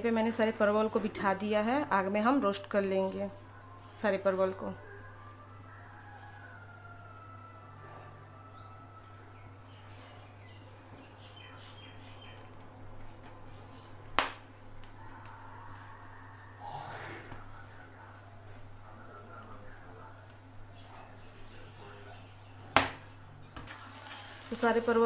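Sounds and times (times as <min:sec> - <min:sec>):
gas burner flame humming: 0:00.0 - 0:25.0.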